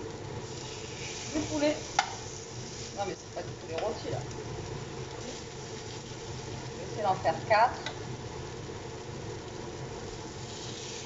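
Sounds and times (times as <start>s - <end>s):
food sizzling in oil: 0.0s - 11.0s.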